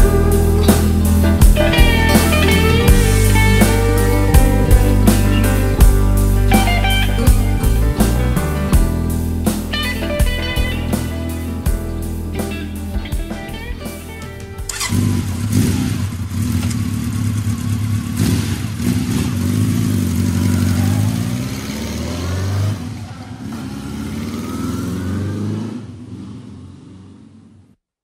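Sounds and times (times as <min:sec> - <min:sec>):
rock song: 0:00.0 - 0:15.2
motorcycle engine revving: 0:00.0 - 0:27.8.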